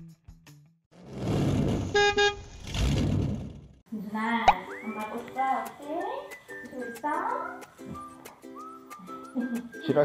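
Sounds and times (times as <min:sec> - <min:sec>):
car horn double toot: 0:01.9 - 0:02.4.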